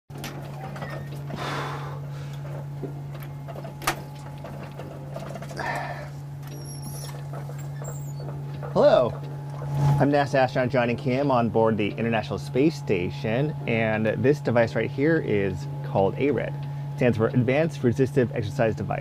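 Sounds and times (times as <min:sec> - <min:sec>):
cabin fans humming: 0:00.1 - 0:19.0.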